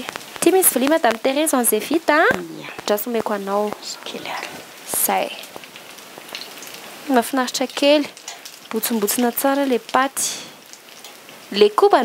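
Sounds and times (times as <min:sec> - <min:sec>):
food sizzling in a pan: 0:00.0 - 0:12.0
person speaking: 0:01.6 - 0:05.3.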